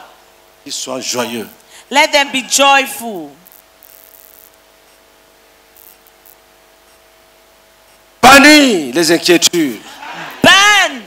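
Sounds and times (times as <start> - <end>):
microphone hiss and hum: 0.0 - 11.0.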